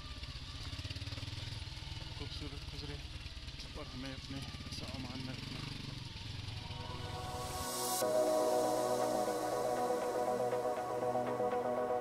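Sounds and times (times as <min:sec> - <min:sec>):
motorcycle engine running: 0:00.0 - 0:08.2.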